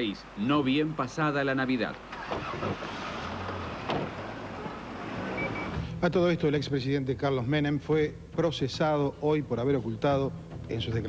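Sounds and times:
street traffic noise: 0.0s - 6.1s.

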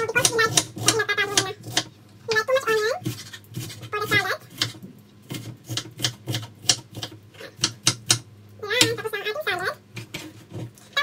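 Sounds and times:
knife chopping on wooden board: 0.2s - 1.9s, 3.0s - 8.2s.

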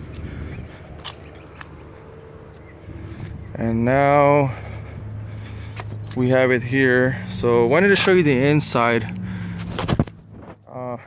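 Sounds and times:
footsteps on gravel: 0.0s - 10.7s
faint outdoor background noise: 0.0s - 11.0s.

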